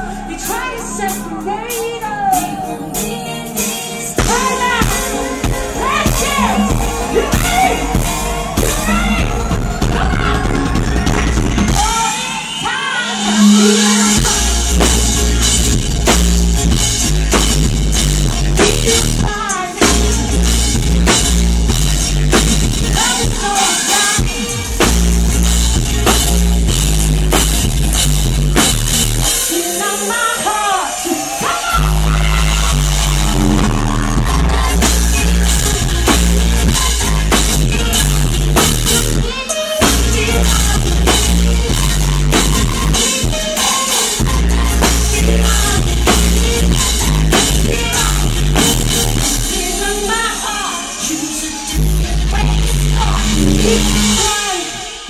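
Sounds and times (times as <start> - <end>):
woman singing: 0.0 - 15.1, 18.6 - 20.6, 22.9 - 24.9, 29.4 - 55.0
bending vocal line: 0.0 - 15.6, 29.4 - 55.0
rock band playing: 0.0 - 55.0
faint rising sweep: 53.0 - 54.5
held low note: 53.0 - 54.5.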